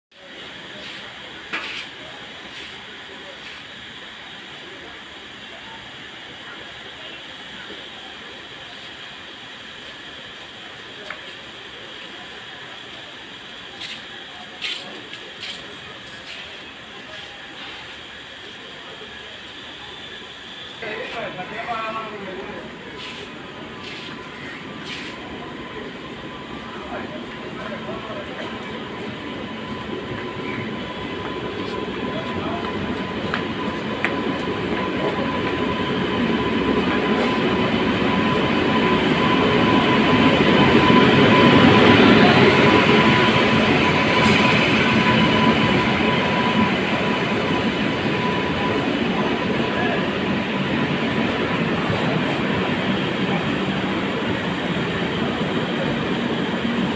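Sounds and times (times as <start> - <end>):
train rumbling past: 0.1 - 56.9.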